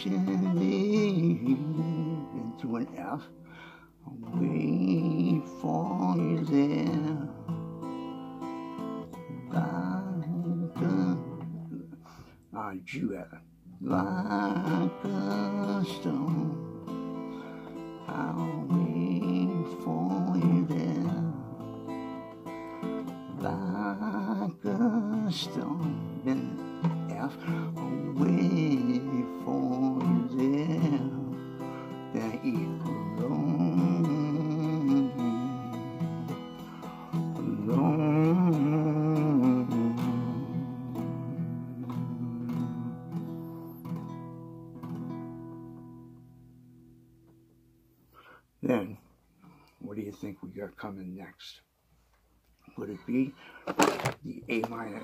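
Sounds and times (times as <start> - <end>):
man singing with vibrato: 0.0 - 43.9
acoustic guitar strumming: 0.0 - 48.8, 53.1 - 55.0.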